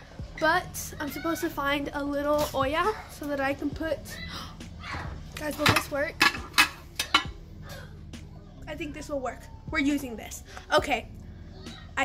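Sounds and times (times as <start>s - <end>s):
metal saucepan knocking and clanking: 5.5s - 7.4s.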